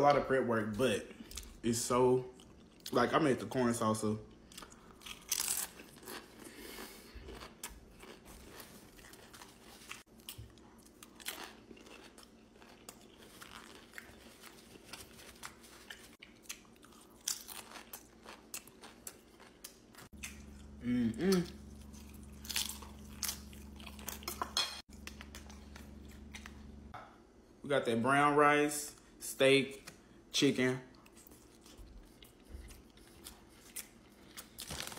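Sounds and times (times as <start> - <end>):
chewing crunchy food: 2.3 - 3.0, 4.3 - 27.0, 30.9 - 34.9.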